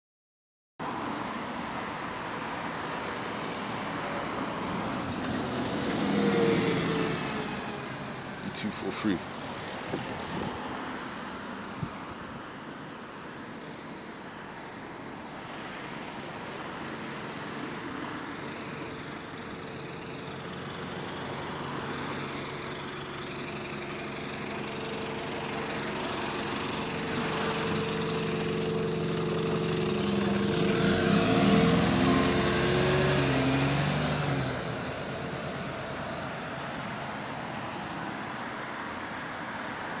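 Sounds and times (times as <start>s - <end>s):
road traffic noise: 0.8s - 40.0s
vehicle engine passing by: 3.8s - 11.0s, 24.0s - 38.2s.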